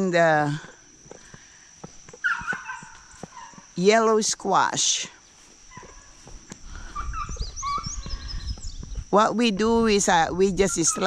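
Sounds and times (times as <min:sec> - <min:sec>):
steady high-pitched whine: 0:00.0 - 0:11.0
birds chirping: 0:00.8 - 0:03.8, 0:05.2 - 0:11.0.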